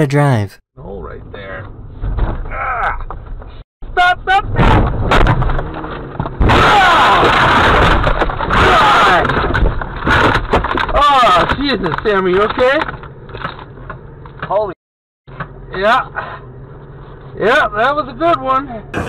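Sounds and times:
car crash with scraping: 4.5 - 13.7
people yelling: 6.6 - 7.4.

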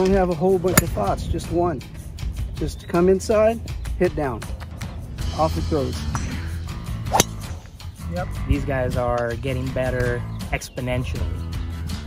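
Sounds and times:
background music: 0.0 - 12.0
golf club striking ball: 0.7 - 1.2, 6.1 - 7.7.

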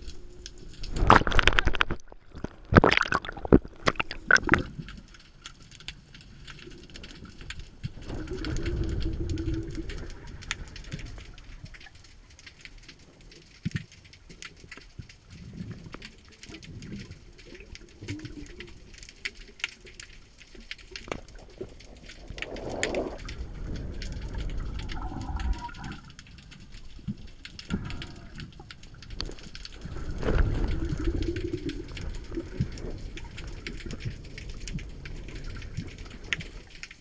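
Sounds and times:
underwater low rumble: 0.0 - 13.4, 14.8 - 37.0
sharp clicks and crackles: 0.0 - 37.0.

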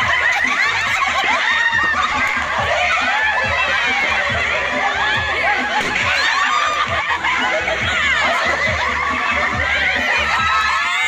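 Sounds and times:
women laughing and shrieking: 0.0 - 11.0.

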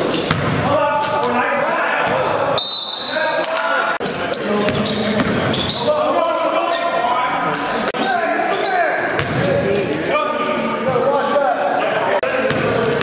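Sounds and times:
sneakers squeaking: 0.0 - 1.3, 2.0 - 11.0, 12.4 - 13.0
basketball bouncing on court: 0.1 - 1.2, 4.6 - 5.7, 9.1 - 9.6, 12.4 - 13.0.

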